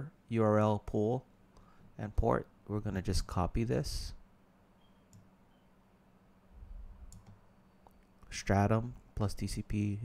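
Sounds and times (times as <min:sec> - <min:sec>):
low steady hum: 0:00.0 - 0:10.0
computer mouse clicks: 0:05.1 - 0:05.3, 0:07.1 - 0:08.1.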